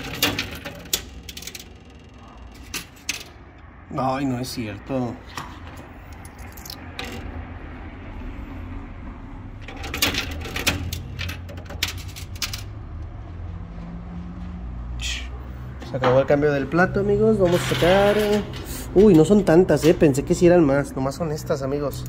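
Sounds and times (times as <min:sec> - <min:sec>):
coins clinking in arcade machine: 0:00.0 - 0:03.4, 0:06.2 - 0:07.3, 0:09.6 - 0:12.7, 0:17.4 - 0:19.4.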